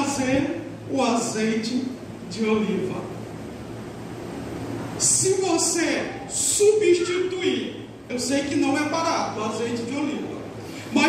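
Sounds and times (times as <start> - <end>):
faint low hum: 0.0 - 11.0
steady background hiss: 0.0 - 11.0.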